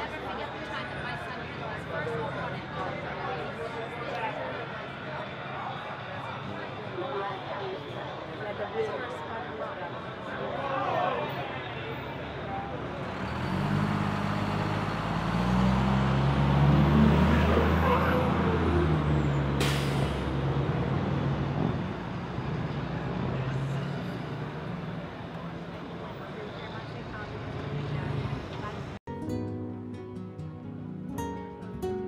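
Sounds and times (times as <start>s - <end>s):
background traffic: 0.0s - 29.0s
voices: 0.0s - 29.0s
vehicle engine passing: 12.2s - 29.0s.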